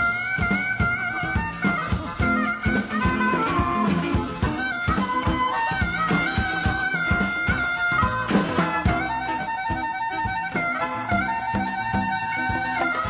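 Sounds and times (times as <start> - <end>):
drum beat: 0.0 - 13.0
electric bass: 0.0 - 13.0
sustained lead melody: 0.0 - 13.0.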